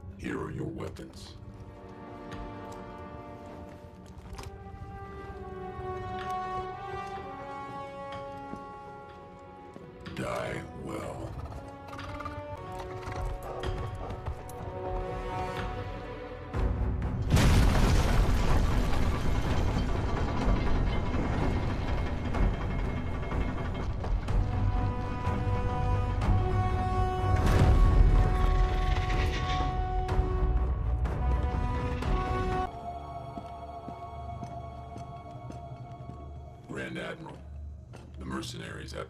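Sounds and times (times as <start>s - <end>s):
orchestral score held notes: 0.0s - 13.8s.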